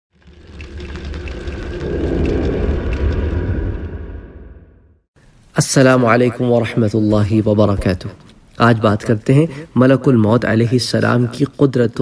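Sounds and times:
deep rumbling: 0.1s - 5.1s.

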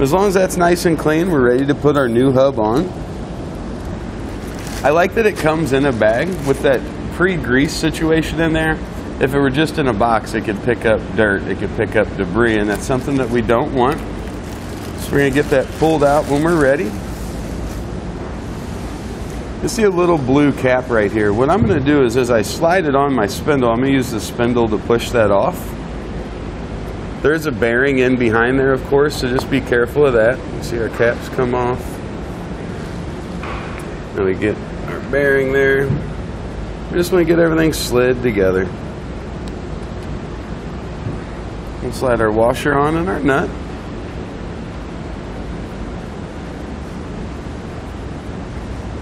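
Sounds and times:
background rumble and hiss: 0.0s - 49.0s.

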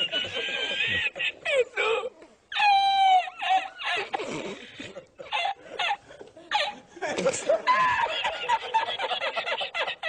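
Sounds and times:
man laughing hard: 0.0s - 2.0s, 4.9s - 10.0s.

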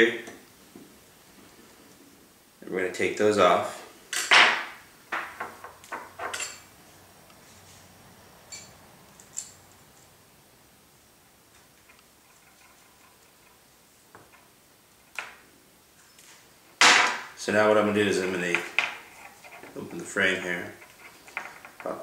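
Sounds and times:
clatter on wooden table: 18.3s - 19.8s, 20.8s - 22.0s.

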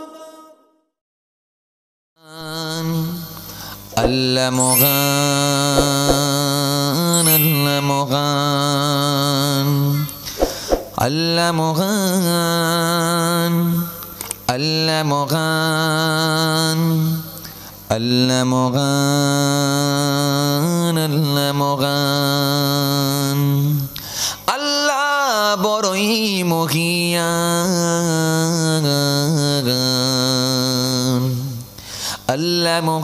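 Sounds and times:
man singing into a microphone: 2.2s - 10.4s, 11.0s - 33.0s.

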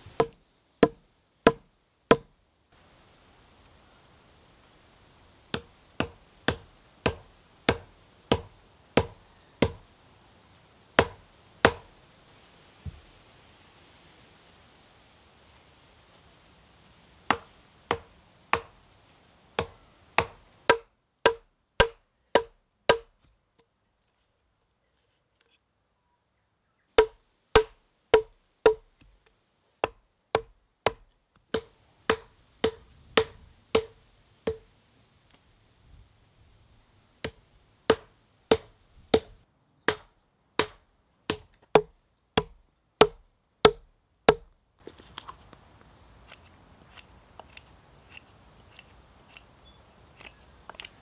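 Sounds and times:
wooden mallet knocking wood: 0.2s - 2.3s, 11.0s - 11.9s, 17.3s - 18.7s, 19.6s - 23.1s, 27.0s - 29.1s, 29.8s - 34.6s, 37.2s - 44.5s
knife shaving wood: 46.2s - 51.0s.

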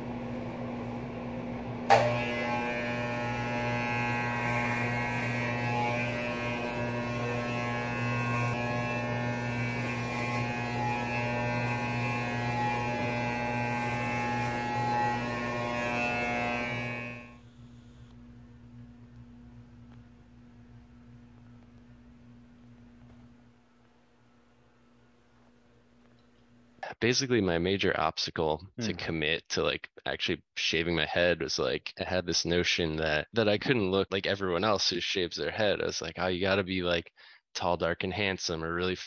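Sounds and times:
steady low hum: 0.0s - 27.0s
hair clippers buzzing: 1.8s - 17.4s
hair clippers switch click: 1.9s - 2.2s.

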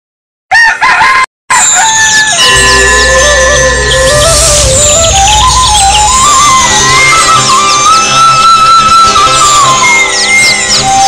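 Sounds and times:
rooster crowing: 0.5s - 3.1s
music with high bird-like chirps: 1.5s - 11.0s.

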